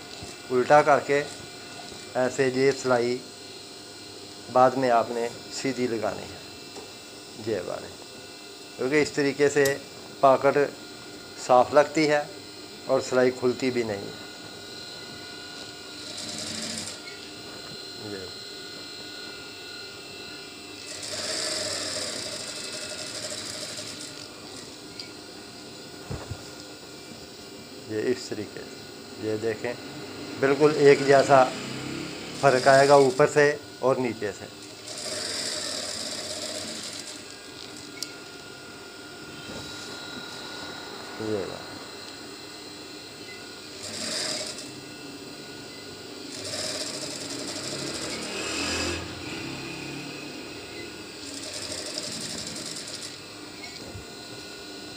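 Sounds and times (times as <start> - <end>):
sewing machine whine: 14.8 - 18.3, 20.1 - 25.1, 30.4 - 38.0, 43.3 - 54.0
sewing machine stitching: 16.0 - 17.0, 20.9 - 24.3, 34.8 - 37.2, 43.8 - 44.7, 46.3 - 49.0, 51.2 - 53.2
click: 37.6 - 38.1.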